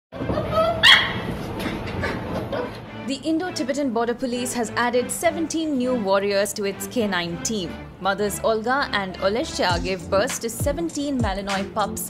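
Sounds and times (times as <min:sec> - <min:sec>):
puppies whining and yipping: 0:00.3 - 0:01.3
puppy yelp: 0:00.3 - 0:01.3.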